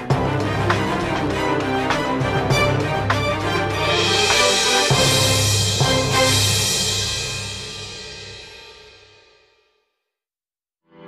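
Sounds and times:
background music: 0:00.0 - 0:08.3
music with sharp beats: 0:00.0 - 0:09.3.

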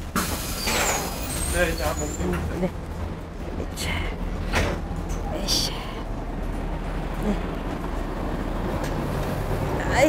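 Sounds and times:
bus engine idling: 0:00.0 - 0:10.0
street noise: 0:00.0 - 0:10.0.

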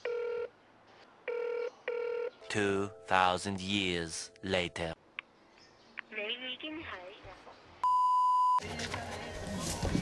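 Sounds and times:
steady beep tone: 0:07.8 - 0:08.6
rustling noise: 0:08.7 - 0:10.0.

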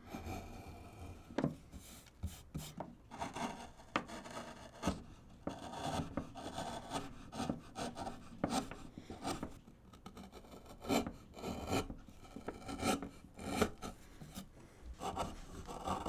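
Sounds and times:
gouge scraping wood: 0:00.1 - 0:16.0.

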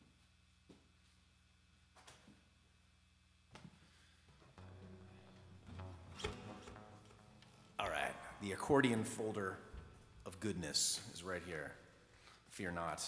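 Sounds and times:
guitar open strings ringing: 0:04.5 - 0:11.2.

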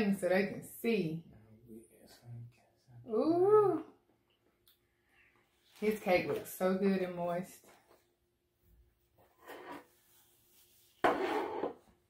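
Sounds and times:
plate scraping across wooden table: 0:09.4 - 0:09.9, 0:11.0 - 0:11.8.

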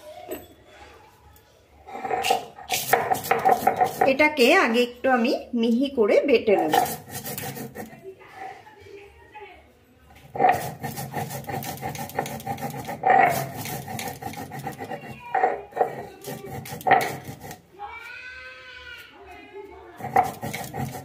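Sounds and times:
stone roller grinding on stone slab: 0:01.9 - 0:04.8, 0:06.5 - 0:08.0, 0:10.2 - 0:17.7, 0:20.0 - 0:21.0.

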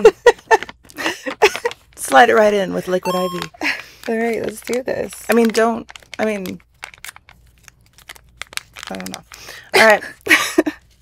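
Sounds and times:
packet crinkling and tearing: 0:03.4 - 0:09.9.

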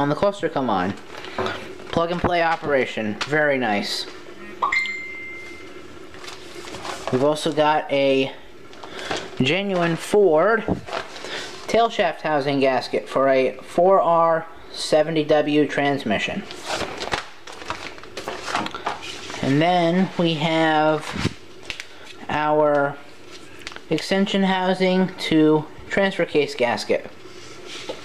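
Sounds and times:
plastic and paper crinkling: 0:00.8 - 0:04.1, 0:06.1 - 0:07.8, 0:08.7 - 0:11.8, 0:16.4 - 0:24.3
high steady ringing tone: 0:04.3 - 0:06.0
packaging rustling: 0:06.0 - 0:07.8, 0:08.6 - 0:11.7, 0:16.4 - 0:22.2, 0:22.8 - 0:24.0.

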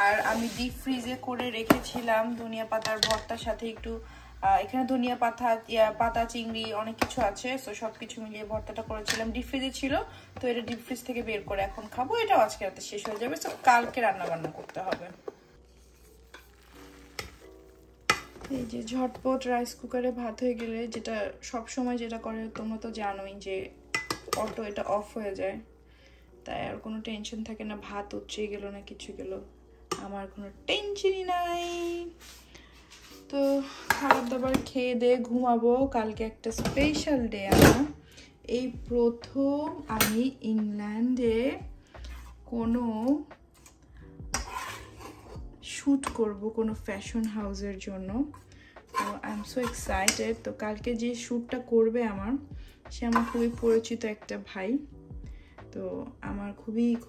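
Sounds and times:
spoon scraping a saucepan: 0:00.0 - 0:03.3, 0:10.6 - 0:19.2, 0:31.5 - 0:34.5, 0:42.0 - 0:42.5, 0:43.6 - 0:46.2, 0:48.3 - 0:50.4, 0:53.0 - 0:53.9.

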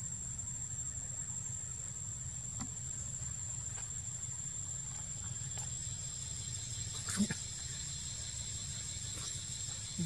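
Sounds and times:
forest background noise: 0:00.0 - 0:10.0
high continuous whine: 0:00.0 - 0:10.0.

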